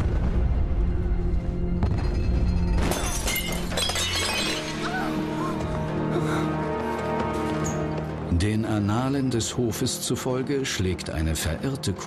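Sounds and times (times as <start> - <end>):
background music: 0.0 - 12.0
vase shattering: 2.0 - 5.1
falling glass shards tinkling: 2.3 - 5.0.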